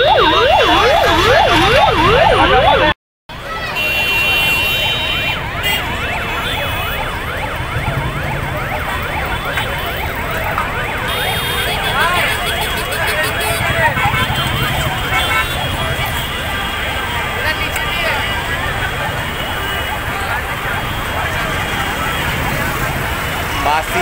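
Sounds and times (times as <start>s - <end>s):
ambulance siren wailing: 0.0s - 24.0s
traffic jam noise: 0.0s - 24.0s.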